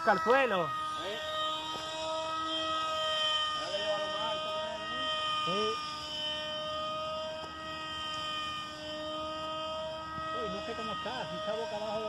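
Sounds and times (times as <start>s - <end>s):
electric motor high whine: 0.0s - 12.0s.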